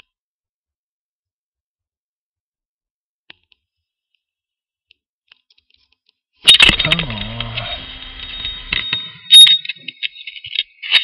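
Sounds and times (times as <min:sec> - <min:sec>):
clicks and metallic clinks: 0:06.5 - 0:11.0.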